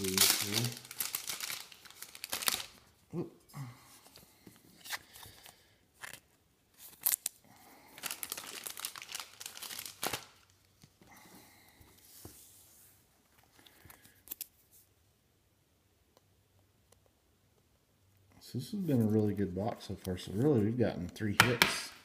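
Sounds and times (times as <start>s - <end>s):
plastic sleeve crinkling: 0.0s - 3.0s, 4.7s - 11.0s.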